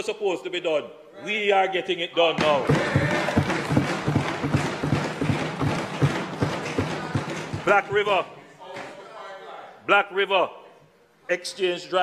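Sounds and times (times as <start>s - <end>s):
desks being thumped: 2.4s - 8.3s.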